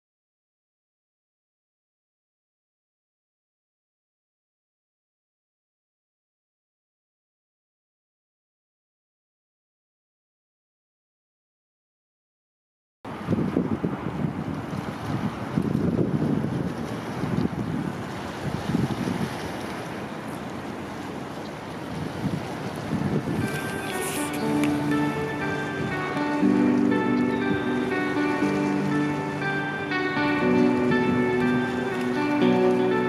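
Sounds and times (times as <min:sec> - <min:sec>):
wind buffeting microphone: 0:13.1 - 0:29.4
background music with held notes: 0:23.4 - 0:33.0.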